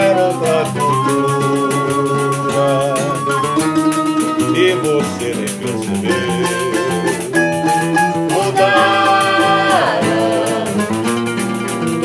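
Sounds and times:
flute melody: 0:00.0 - 0:10.9
guitar strumming: 0:00.0 - 0:12.0
pandeiro jingling rhythm: 0:00.0 - 0:12.0.

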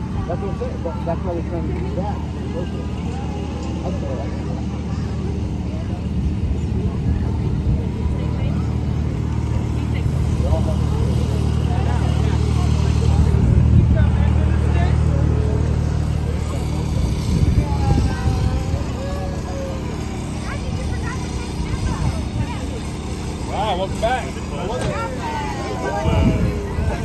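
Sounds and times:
small tractor engine running: 0:00.0 - 0:27.0.

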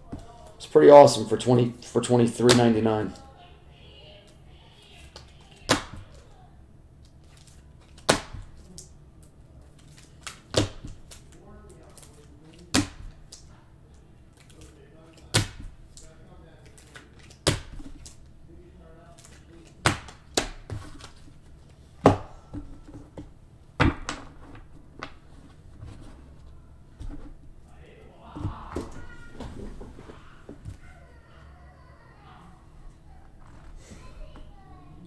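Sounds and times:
cards slapping onto a table: 0:05.6 - 0:06.2, 0:07.9 - 0:08.9, 0:19.2 - 0:21.2.

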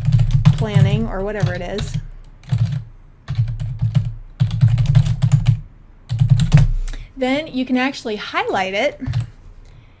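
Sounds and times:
keyboard typing: 0:00.0 - 0:06.8, 0:09.0 - 0:09.4.

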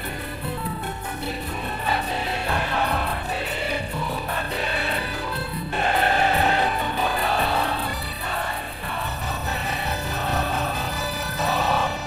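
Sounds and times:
choir singing: 0:00.0 - 0:12.0
instrumental accompaniment: 0:00.0 - 0:12.0.

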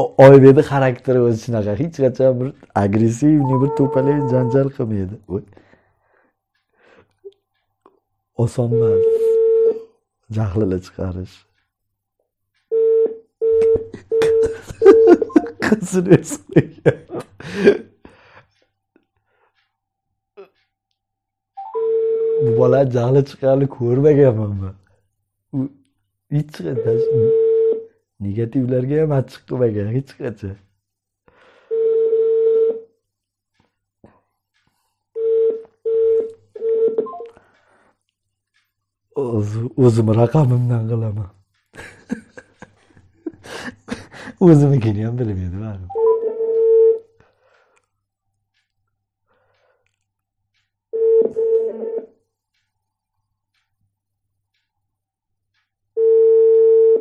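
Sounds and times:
telephone ringback beep: 0:03.4 - 0:04.6, 0:35.2 - 0:37.4, 0:45.9 - 0:47.0, 0:51.0 - 0:52.1, 0:56.0 - 0:57.0.

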